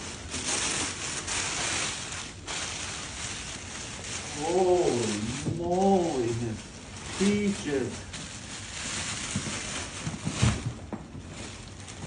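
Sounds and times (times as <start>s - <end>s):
plastic wrap rustling: 0.0s - 12.0s.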